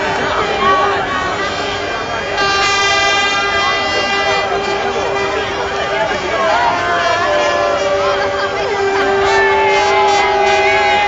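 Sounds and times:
crowd of fans shouting: 0.0 - 11.0
horn blasting long note: 0.2 - 11.0.

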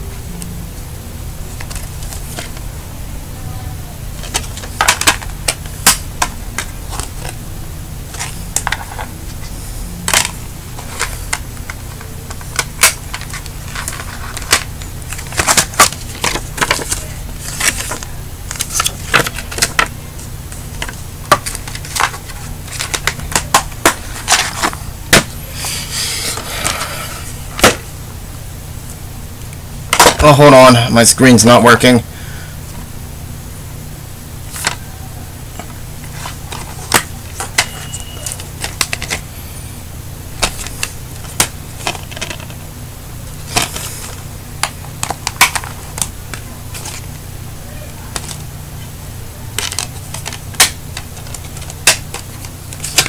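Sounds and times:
low hum: 0.0 - 31.3, 32.0 - 53.0.

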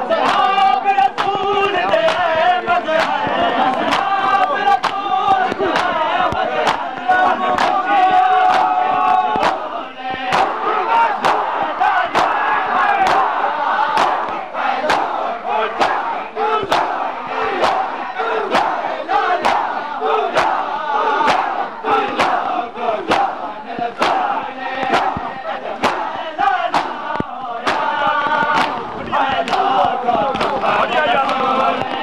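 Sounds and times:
crowd chanting: 0.0 - 32.0
hands slapping chests in unison: 0.0 - 32.0.

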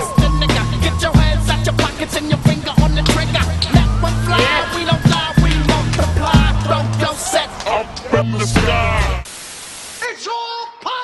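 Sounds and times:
music with heavy bass: 0.0 - 7.2, 8.2 - 9.3
television static hiss: 7.6 - 10.1.

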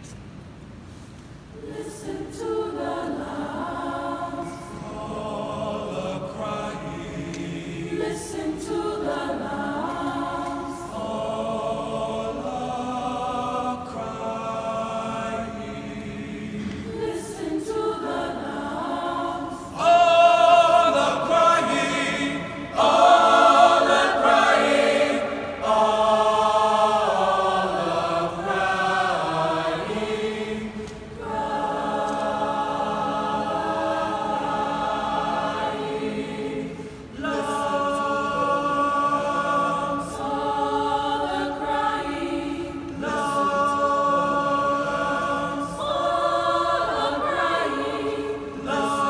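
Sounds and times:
choir singing a cappella: 1.5 - 49.0
singers breathing: 36.7 - 37.2.

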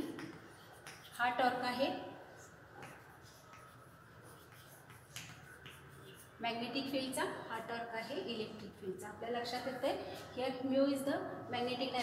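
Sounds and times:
chalk tapping on blackboard: 0.0 - 1.6, 2.3 - 6.4.

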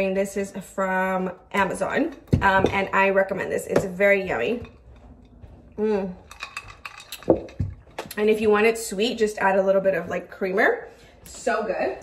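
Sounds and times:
ice clinking: 6.3 - 7.9.

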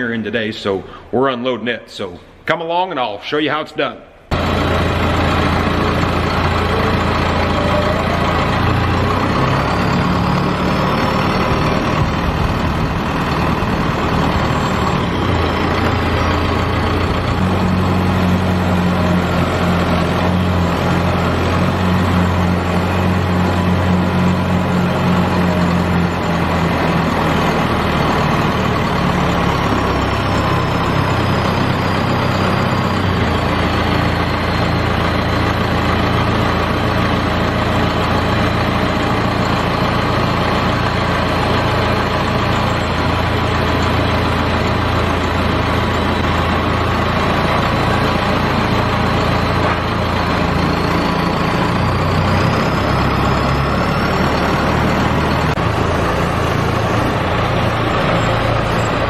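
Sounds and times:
tractor engine running: 4.3 - 59.0.

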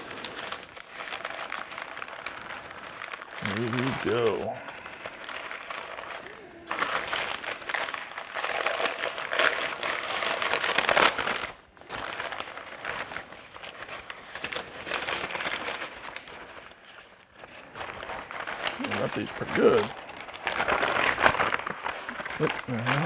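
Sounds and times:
paper crinkling and rustling: 0.0 - 23.0.

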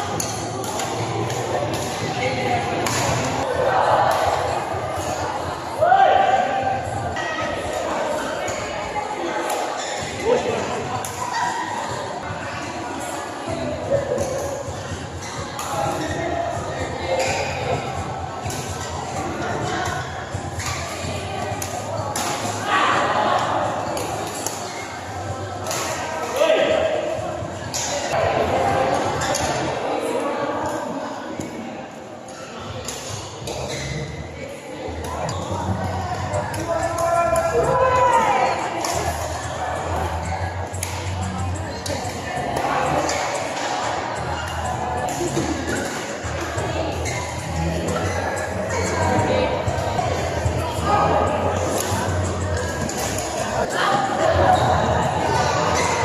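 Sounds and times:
players chattering and calling: 0.0 - 56.0
rackets hitting shuttlecock: 2.8 - 3.3, 21.6 - 22.6, 52.6 - 53.4
badminton play impacts: 2.8 - 3.5, 21.5 - 22.6.

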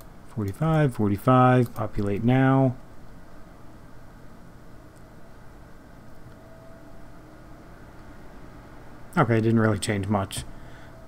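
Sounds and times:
faint hum and hiss: 0.0 - 11.0.

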